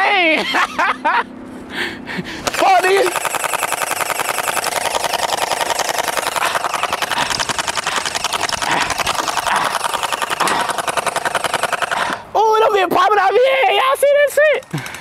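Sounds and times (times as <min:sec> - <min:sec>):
gel blaster firing rapidly: 0:02.5 - 0:12.2.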